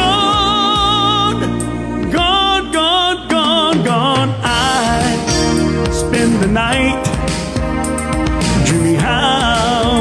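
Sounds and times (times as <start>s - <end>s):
man singing with vibrato: 0.0s - 7.6s, 8.4s - 10.0s
instrumental accompaniment: 0.0s - 10.0s.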